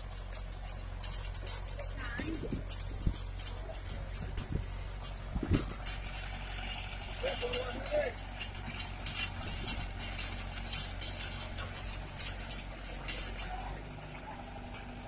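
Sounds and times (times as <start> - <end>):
rotary tiller churning ground: 0.0 - 15.0
sharp clicks and crackles: 0.0 - 15.0
tractor engine running: 0.0 - 15.0.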